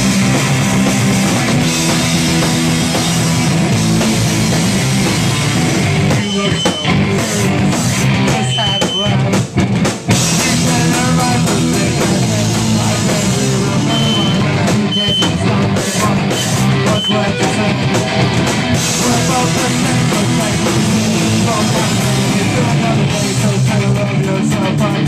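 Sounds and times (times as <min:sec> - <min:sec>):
bass guitar: 0:00.0 - 0:25.0
distorted electric guitars: 0:00.0 - 0:25.0
drum kit: 0:00.0 - 0:25.0.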